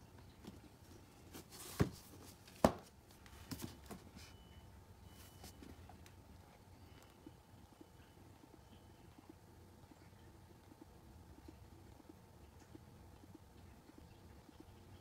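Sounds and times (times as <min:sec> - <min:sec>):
knocks on cardboard box: 0:02.6 - 0:02.9.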